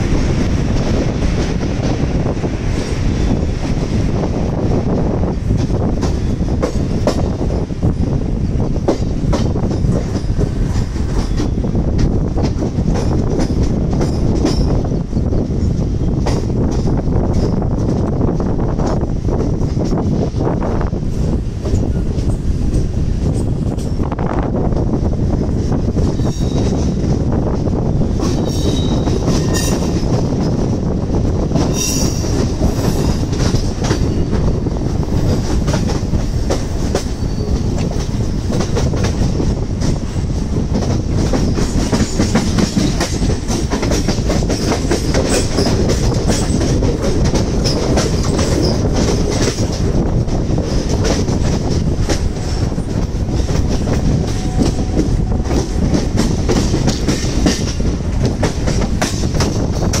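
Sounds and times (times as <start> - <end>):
train wheels rumbling on rail: 0.0 - 60.0
high wheel squeal: 37.2 - 37.7.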